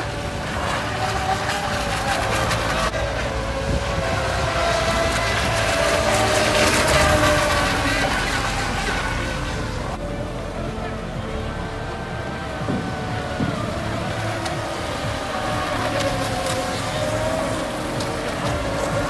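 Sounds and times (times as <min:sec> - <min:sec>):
electric boat motors whining: 0:00.0 - 0:19.0.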